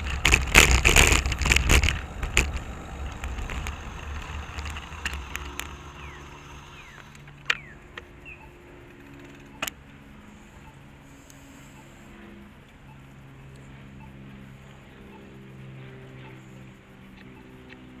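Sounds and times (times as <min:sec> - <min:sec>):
rattling clicks: 0:00.0 - 0:08.1
sharp clicks: 0:00.0 - 0:09.8
bicycle road rumble: 0:00.0 - 0:18.0
wind: 0:00.0 - 0:18.0.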